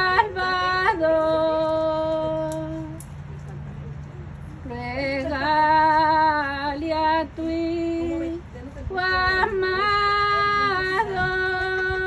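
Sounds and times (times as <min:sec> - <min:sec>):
woman singing a hymn: 0:00.0 - 0:03.0, 0:04.6 - 0:12.0.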